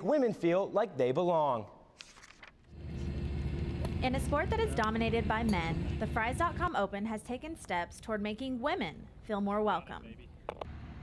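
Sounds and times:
low outdoor rumble: 0:02.8 - 0:06.7.

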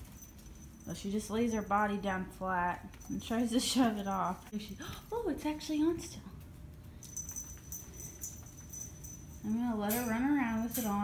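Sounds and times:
faint metallic jingling: 0:00.0 - 0:04.5, 0:06.9 - 0:11.0.

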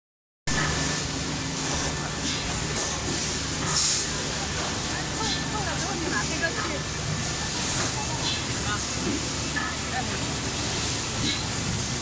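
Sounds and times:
machine mechanical hum: 0:00.5 - 0:12.0.

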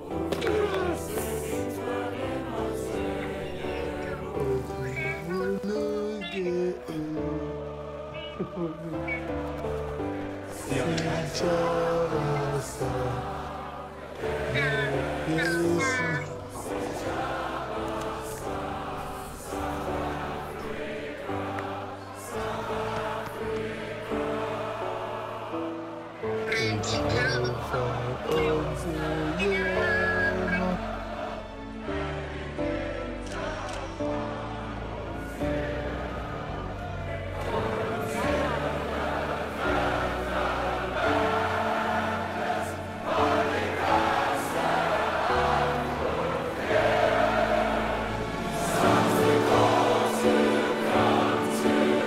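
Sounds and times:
choir singing long notes: 0:00.0 - 0:52.0
sustained accompaniment: 0:00.0 - 0:52.0.

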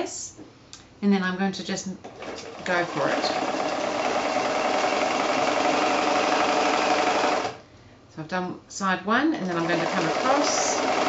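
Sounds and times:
sewing machine stitching: 0:02.0 - 0:07.6, 0:09.4 - 0:11.0.

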